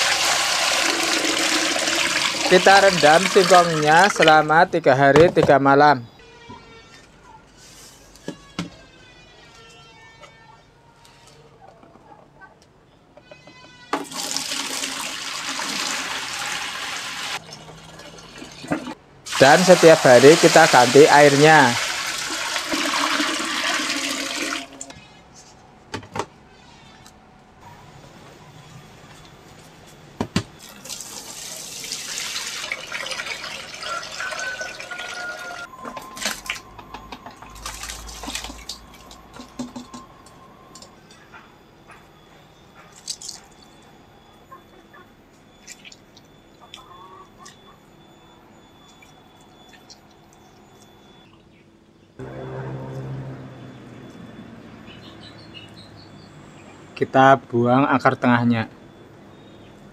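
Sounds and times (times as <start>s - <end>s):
water pouring into plastic basin: 0.0s - 4.2s, 14.0s - 24.9s, 30.6s - 35.6s, 37.5s - 38.8s.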